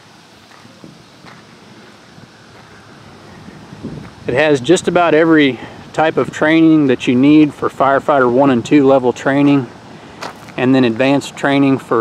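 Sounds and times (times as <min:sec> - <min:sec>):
light wind on microphone: 0:02.0 - 0:05.4.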